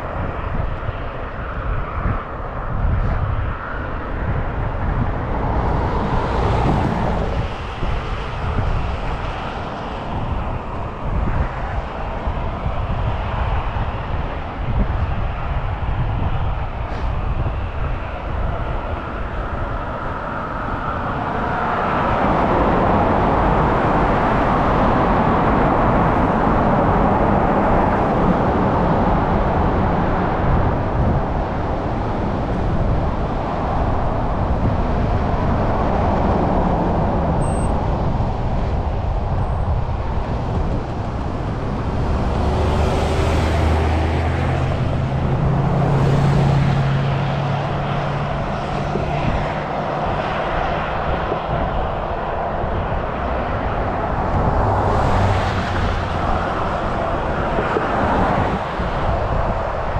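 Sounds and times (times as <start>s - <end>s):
highway traffic rush: 0.0s - 59.9s
vehicle engine humming: 2.8s - 59.9s.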